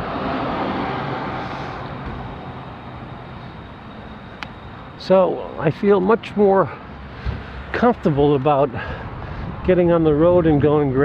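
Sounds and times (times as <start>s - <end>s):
vehicle passing: 0.0s - 10.6s
road traffic: 0.0s - 11.0s.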